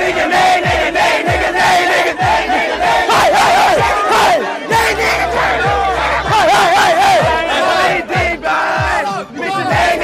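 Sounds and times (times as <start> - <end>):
crowd yelling and chanting: 0.0 - 10.0
party music with sliding bass: 0.0 - 10.0.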